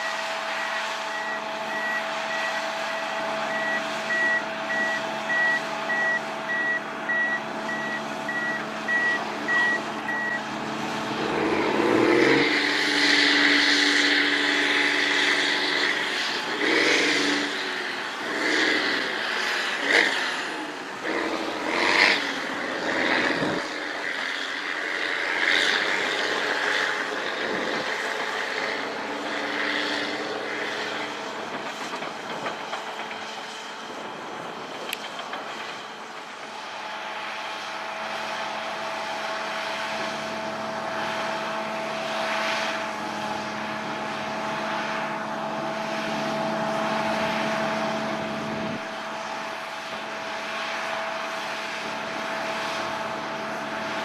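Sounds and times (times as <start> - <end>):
reverse alarm beeping: 0.0 - 10.4
bulldozer diesel engine revving: 0.0 - 54.0.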